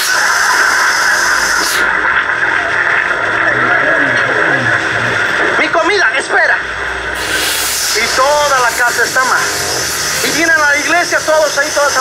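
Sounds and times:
loud hiss burst: 0.0s - 1.9s, 7.2s - 12.0s
radio static: 0.0s - 12.0s.

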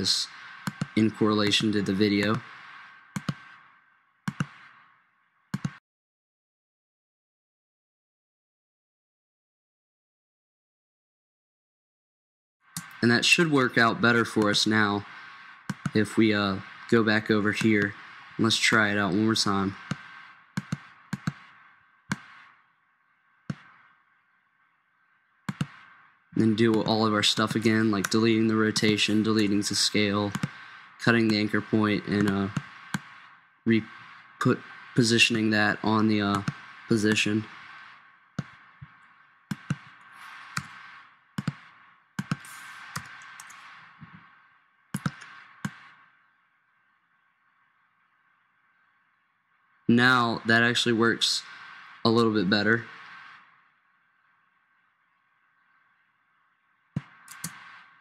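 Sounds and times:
faint hiss: 0.0s - 3.7s, 12.8s - 21.6s, 25.9s - 46.1s, 49.9s - 53.6s
computer mouse clicks: 0.6s - 1.0s, 3.2s - 3.5s, 4.3s - 4.7s, 5.6s - 5.8s, 12.8s - 13.0s, 15.7s - 16.0s, 19.8s - 21.4s, 30.3s - 30.6s, 32.1s - 33.1s, 39.5s - 44.2s, 45.0s - 45.9s, 57.0s - 57.8s
mouse and keyboard clicks: 5.6s - 5.8s, 41.4s - 41.6s, 42.2s - 44.2s, 45.0s - 45.8s, 57.0s - 57.7s
keyboard keystrokes: 57.3s - 57.6s.

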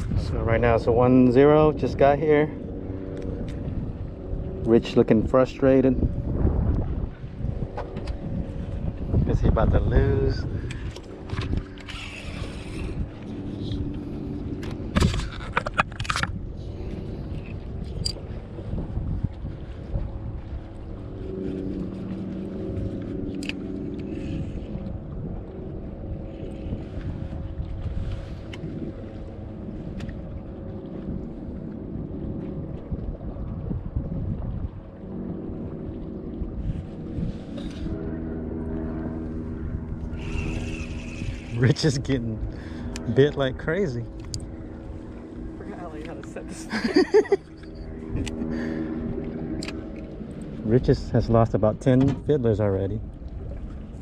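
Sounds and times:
boat motor humming: 0.0s - 54.0s.

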